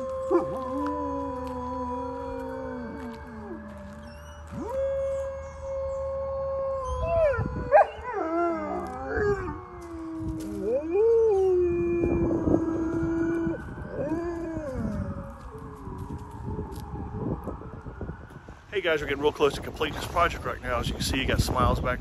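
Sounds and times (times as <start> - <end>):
dogs howling: 0.0 - 16.1.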